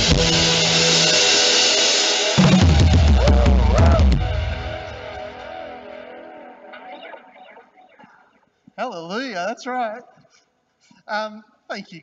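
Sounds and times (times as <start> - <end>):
held keyboard chord: 0.0 - 7.0.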